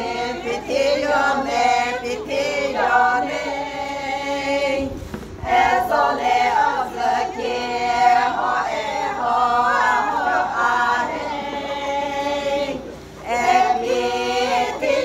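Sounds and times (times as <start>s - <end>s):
women singing unaccompanied: 0.0s - 15.0s.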